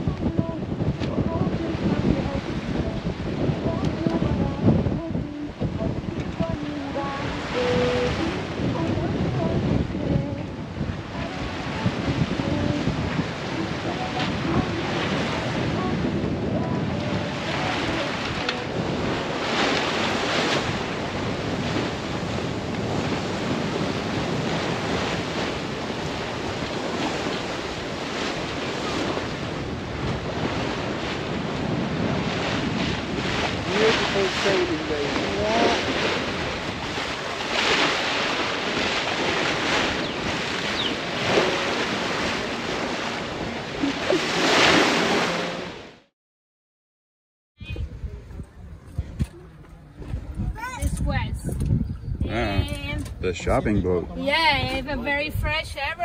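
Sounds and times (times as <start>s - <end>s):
wind buffeting microphone: 0.0s - 45.9s, 47.6s - 56.0s
water rushing along a hull: 0.0s - 46.1s, 47.6s - 56.0s.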